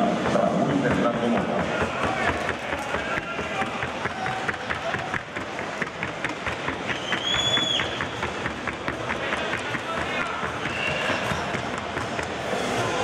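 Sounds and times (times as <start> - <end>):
crowd chatter: 0.0 - 13.0
horse hoofbeats trotting: 0.3 - 12.4.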